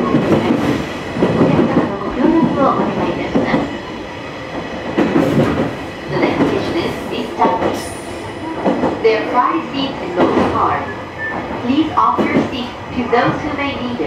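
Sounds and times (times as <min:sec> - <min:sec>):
train running on track: 0:00.0 - 0:14.0
recorded passenger announcement: 0:01.3 - 0:03.7, 0:06.1 - 0:08.0, 0:08.9 - 0:14.0.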